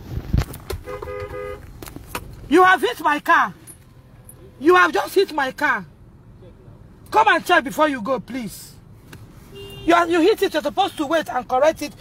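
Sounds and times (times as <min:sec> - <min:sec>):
car horn honking: 0:00.7 - 0:01.8, 0:09.5 - 0:11.3.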